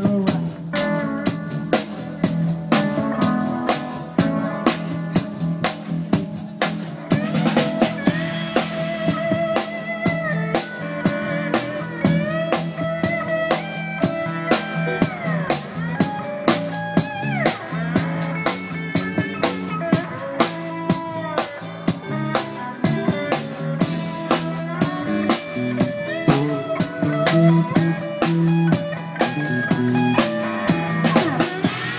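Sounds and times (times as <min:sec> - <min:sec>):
drum kit beat with rimshots: 0:00.0 - 0:31.9
electric guitar lead: 0:00.0 - 0:31.9.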